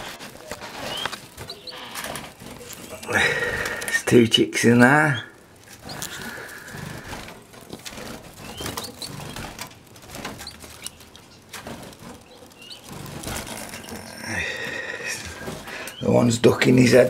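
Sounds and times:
loud bird calls: 0.0 - 16.8
birds chirping: 0.0 - 17.0
wings fluttering: 0.0 - 17.0.

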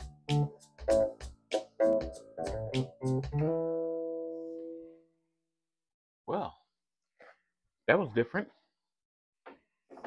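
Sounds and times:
electric guitar notes and chord: 0.0 - 4.8.

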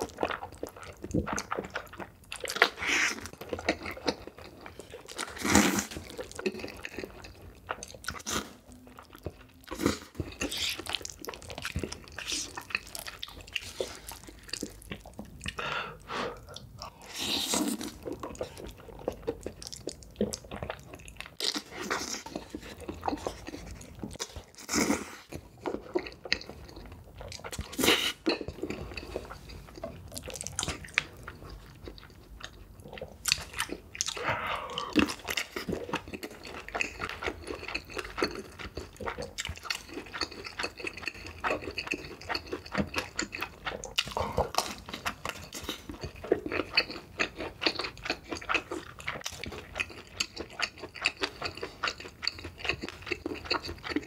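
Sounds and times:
close chewing of noodles: 0.0 - 54.0.

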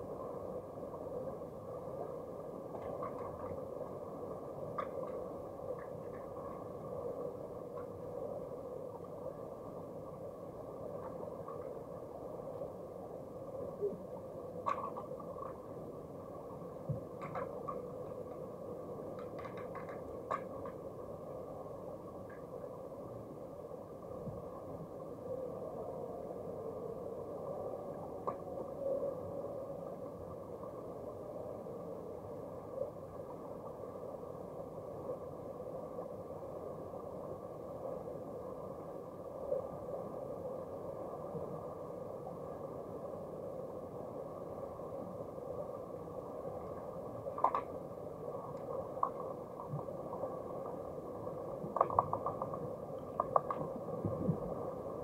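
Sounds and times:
muffled underwater hum: 0.0 - 55.0
faint sharp clicks: 17.0 - 18.4, 19.1 - 20.8, 46.6 - 47.8, 51.6 - 53.8.

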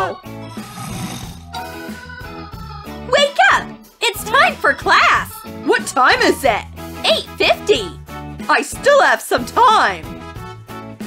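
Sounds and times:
background music: 0.0 - 11.0
man snoring: 0.4 - 2.0.

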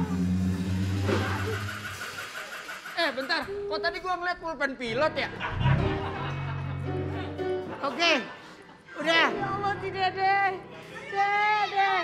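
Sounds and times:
low droning tone: 0.0 - 2.0.

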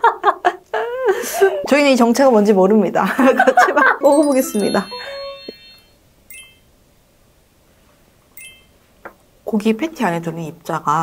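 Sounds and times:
bright ringing chime: 4.0 - 6.7, 8.4 - 8.8
short dings: 4.2 - 6.6, 8.4 - 8.7.

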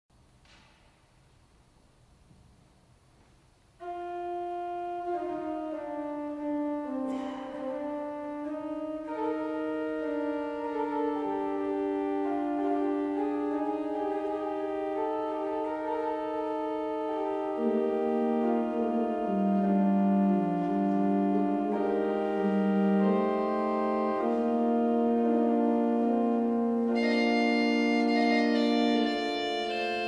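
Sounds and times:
pipe organ playing slow piece: 3.8 - 30.0.

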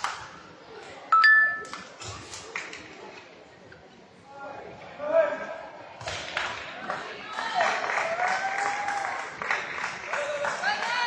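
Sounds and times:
people clapping: 0.0 - 0.3, 2.5 - 2.8, 6.0 - 11.0.

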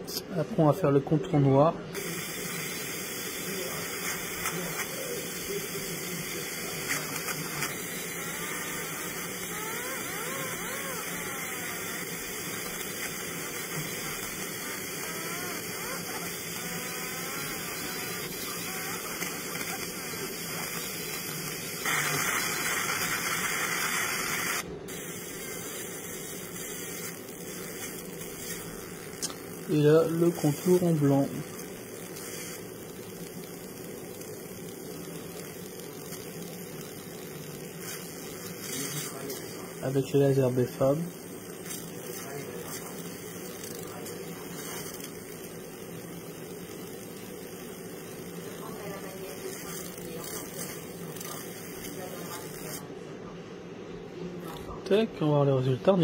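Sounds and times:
laser engraving machine hiss: 1.9 - 52.9.

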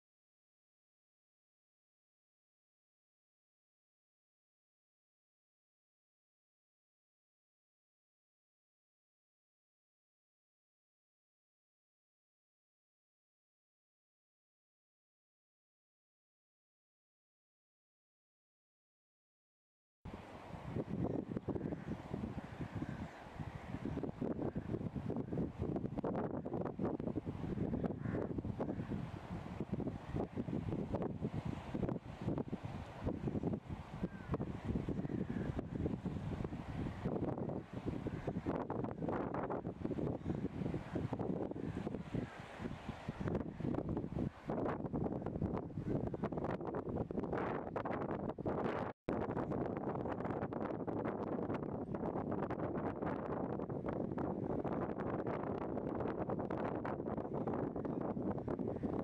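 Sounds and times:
wind buffeting microphone: 20.1 - 59.0.

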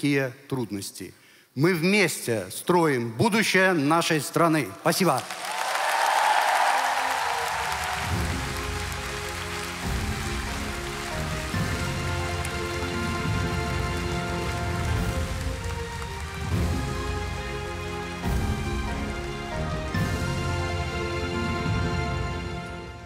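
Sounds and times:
applause: 5.0 - 21.1.

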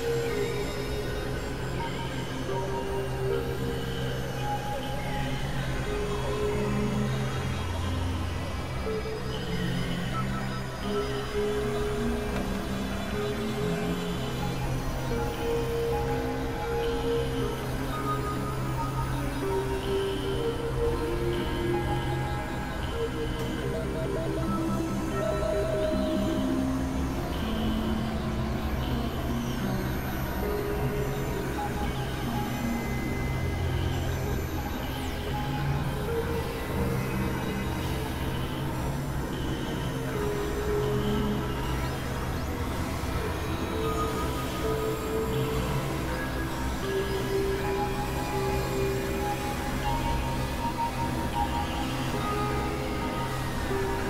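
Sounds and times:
synthesizer drone music: 0.0 - 54.0.

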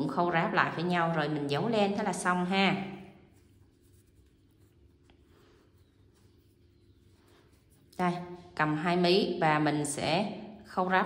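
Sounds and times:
low room hum: 0.0 - 11.0
hands rustling yarn: 2.6 - 8.7.

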